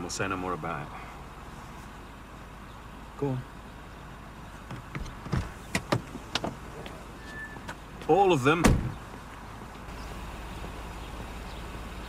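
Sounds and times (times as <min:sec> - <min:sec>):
car door unlatching and opening: 0:04.7 - 0:07.8, 0:08.6 - 0:09.0.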